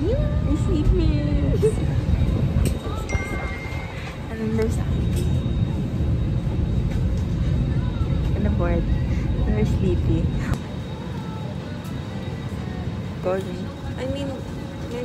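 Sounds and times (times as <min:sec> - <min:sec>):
aircraft cabin rumble: 0:00.0 - 0:15.0
faint voices: 0:00.0 - 0:15.0.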